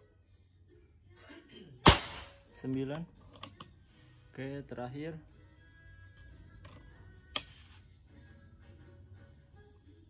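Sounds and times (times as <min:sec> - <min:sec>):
air rifle shot: 0:01.8 - 0:02.4.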